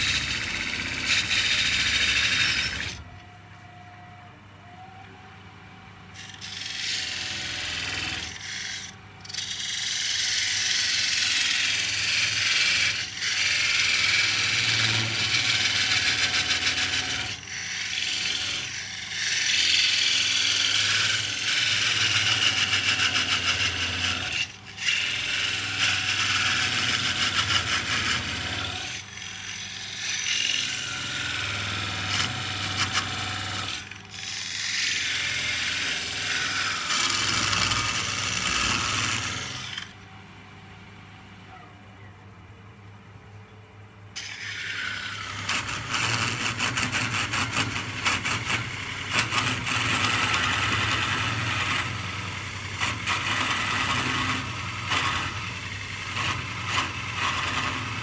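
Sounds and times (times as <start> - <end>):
lathe tool scraping wood: 0.0 - 3.1, 6.2 - 40.0, 44.2 - 58.0
lathe motor hum: 6.2 - 39.9, 44.2 - 58.0.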